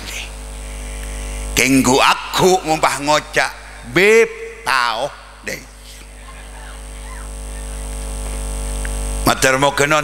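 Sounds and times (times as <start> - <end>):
sound system electrical hum: 0.0 - 10.0.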